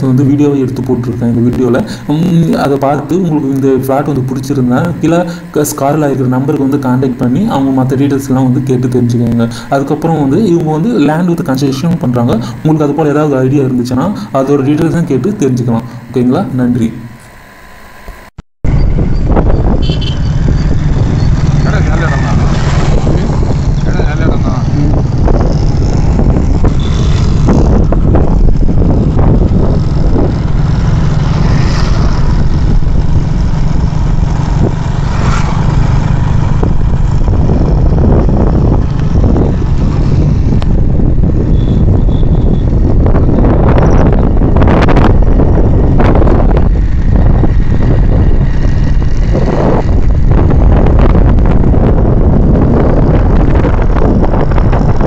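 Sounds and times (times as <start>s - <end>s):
motorcycle engine running: 17.5s - 55.0s
wind buffeting microphone: 18.6s - 55.0s.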